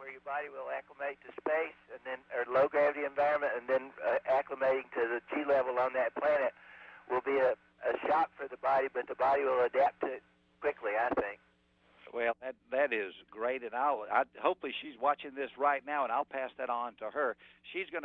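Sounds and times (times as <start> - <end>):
person talking over radio: 0.0 - 11.4
faint steady hum: 0.0 - 18.0.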